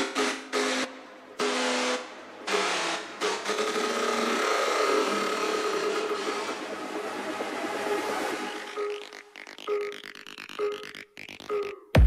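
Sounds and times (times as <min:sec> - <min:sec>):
house music breakdown: 0:00.0 - 0:12.0.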